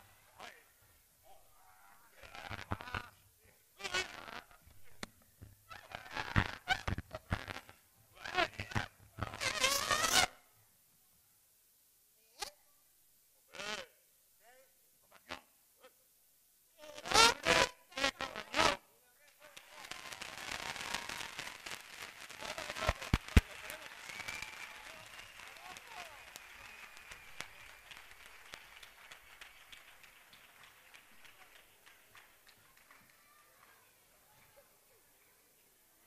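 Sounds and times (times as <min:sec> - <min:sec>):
audience applause: 0:21.1 - 0:33.9.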